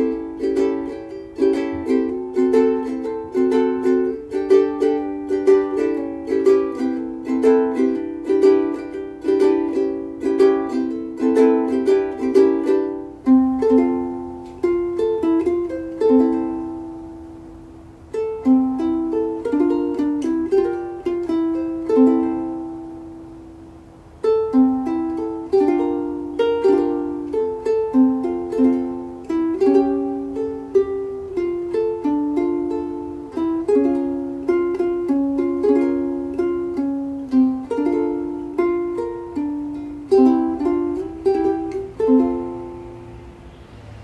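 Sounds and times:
ukulele plucking a melody: 0.0s - 44.0s.

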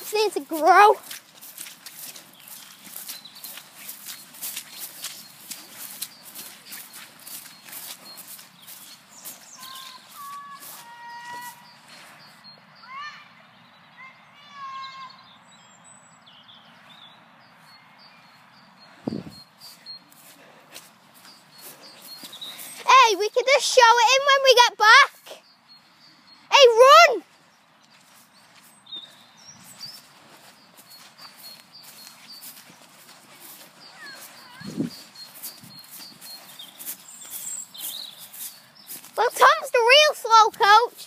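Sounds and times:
footsteps through wet grass: 0.0s - 12.5s, 16.9s - 41.0s
faint high chirping: 2.0s - 15.4s, 17.6s - 24.4s, 25.1s - 41.0s
short pitched bird calls: 4.8s - 13.4s, 28.9s - 39.0s.

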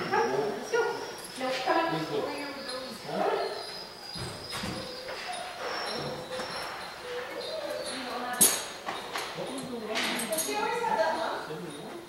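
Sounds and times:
voices in a large hall: 0.0s - 12.0s
dog barking and whining: 2.6s - 8.3s.

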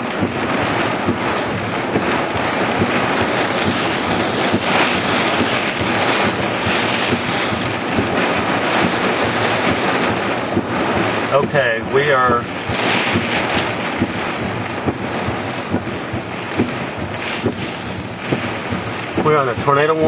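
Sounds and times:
heavy rain pouring: 0.0s - 20.0s
wind gusts: 0.0s - 20.0s.

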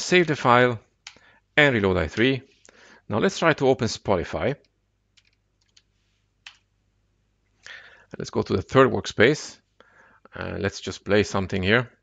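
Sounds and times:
computer keyboard keystrokes: 5.1s - 6.6s.

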